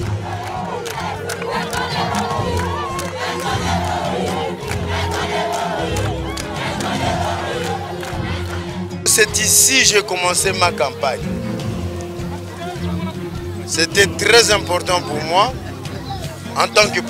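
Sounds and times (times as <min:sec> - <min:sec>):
background music: 0:00.0 - 0:17.0
crowd shouting and calling: 0:00.0 - 0:17.0.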